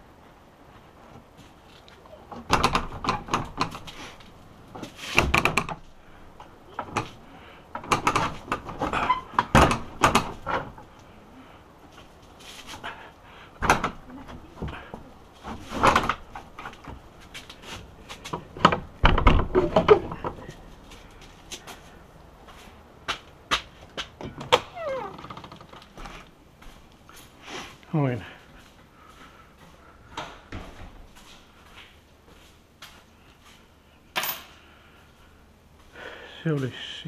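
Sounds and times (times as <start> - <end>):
door bolts clicking and knocking: 2.4 - 3.9, 5.2 - 5.8, 7.7 - 10.8, 18.4 - 20.4
heavy door thump: 18.6 - 20.1.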